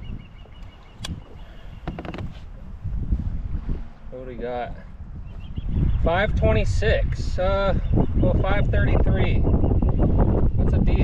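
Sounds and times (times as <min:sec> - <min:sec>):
wind rumbling on microphone: 0:00.0 - 0:11.0
sharp clicks and knocks: 0:01.8 - 0:02.3.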